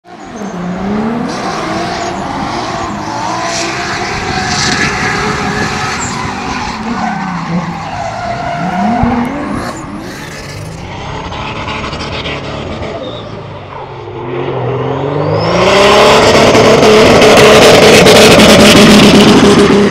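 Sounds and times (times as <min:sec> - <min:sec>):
car engine revving: 0:00.1 - 0:19.9
tyres squealing and skidding: 0:00.1 - 0:19.9.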